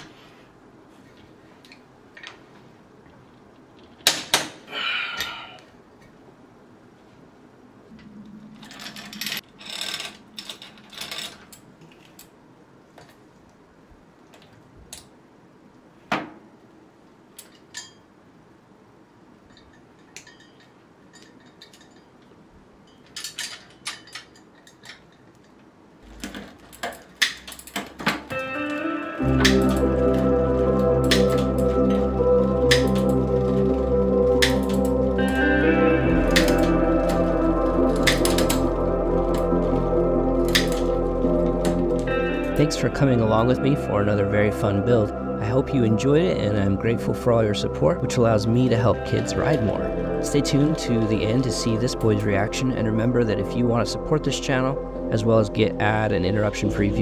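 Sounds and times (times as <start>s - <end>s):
bicycle chain clicking and rattling: 8.6s - 11.7s
loud music with heavy bass: 28.4s - 57.0s.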